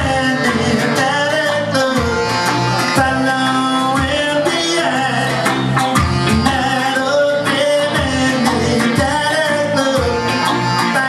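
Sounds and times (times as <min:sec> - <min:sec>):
live reggae band: 0:00.0 - 0:11.0.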